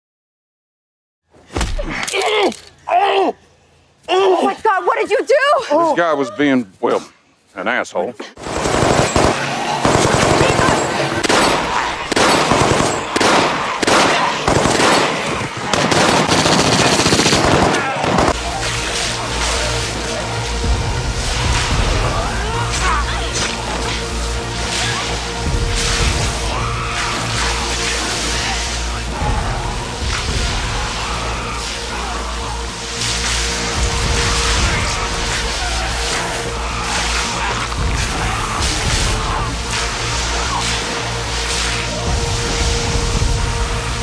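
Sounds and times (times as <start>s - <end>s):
rapid automatic gunfire: 8.4s - 18.4s
low droning music: 8.4s - 44.0s
low hum: 18.1s - 44.0s
water spray from fire hose: 18.3s - 44.0s.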